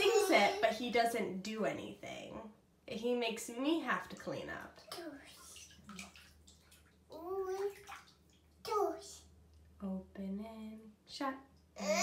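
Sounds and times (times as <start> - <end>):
toddler vocal sounds: 0.0 - 0.8, 7.1 - 7.9, 11.8 - 12.0
bathwater sloshing: 3.8 - 8.7.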